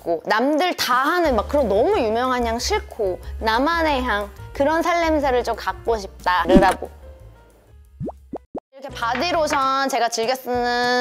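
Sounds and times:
faint background music: 0.0 - 7.8, 8.8 - 11.0.

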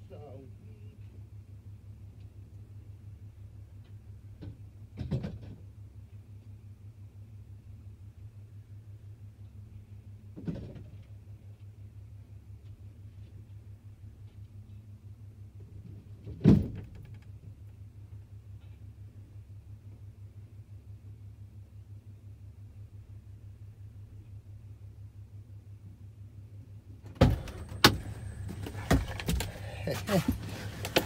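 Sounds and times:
truck engine idling: 27.2 - 31.0.

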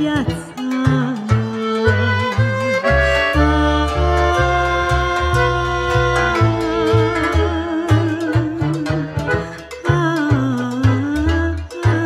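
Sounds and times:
accordion chords: 0.0 - 12.0
double bass low notes: 0.0 - 12.0
violin: 0.0 - 12.0.

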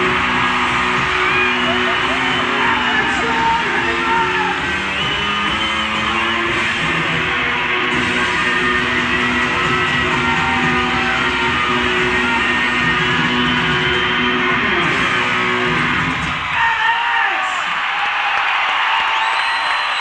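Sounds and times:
electric guitar: 0.0 - 16.5
live rock band playing: 0.0 - 16.6.

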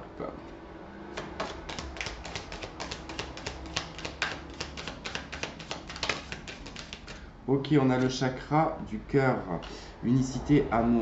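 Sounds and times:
cards being shuffled: 1.2 - 7.2.

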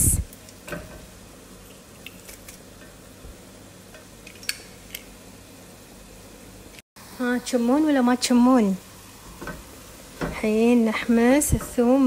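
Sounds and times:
mushrooms sizzling in a pan: 4.8 - 12.0.

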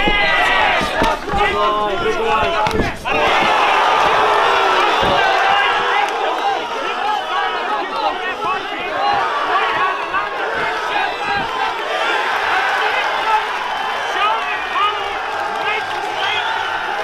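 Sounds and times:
crowd shouting and cheering: 0.0 - 17.0.

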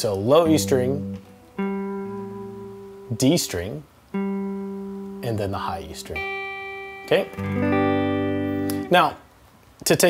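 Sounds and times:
electric guitar note ringing: 0.4 - 9.1.

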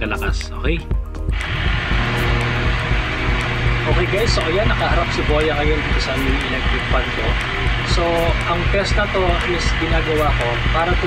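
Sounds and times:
low hum: 1.3 - 11.0.

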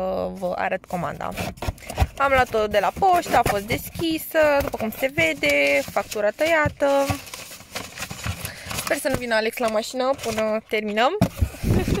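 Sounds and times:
paper and plastic rustling: 0.4 - 12.0.

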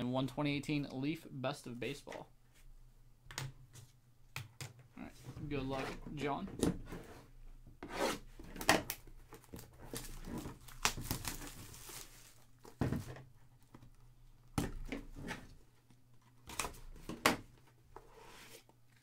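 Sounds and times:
plastic wrap crinkling and tearing: 8.9 - 12.6.

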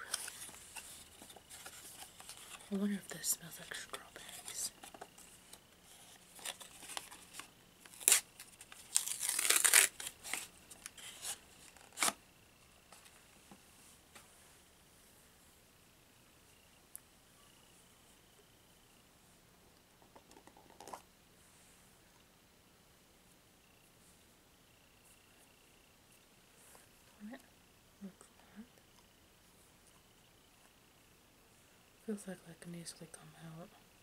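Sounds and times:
packaging being torn and crinkled: 6.4 - 12.2.

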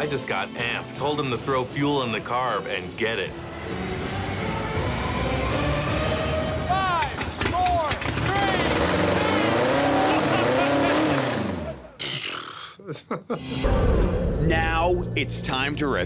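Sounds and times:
car engine starting and revving: 3.4 - 6.7, 7.8 - 12.0
people whooping and cheering: 9.7 - 10.7.

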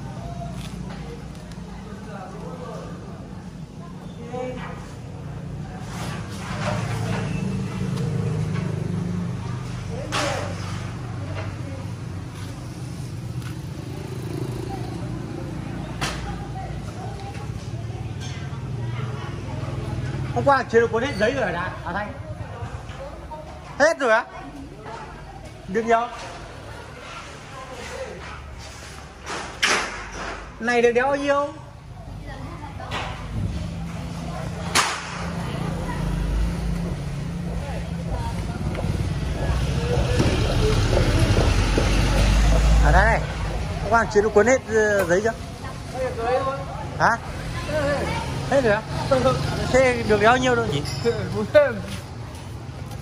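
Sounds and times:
faint voices talking: 0.0 - 29.4, 30.1 - 53.0.

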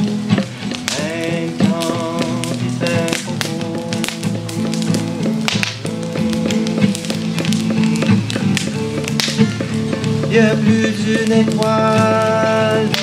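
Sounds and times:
acoustic guitar strumming: 0.0 - 13.0
percussive taps on guitar: 0.0 - 13.0
person singing: 0.0 - 13.0.

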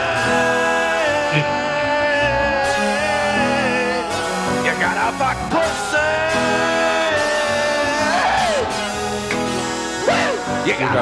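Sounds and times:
rowdy novelty song: 0.0 - 11.0
singer holding long note: 0.0 - 11.0.

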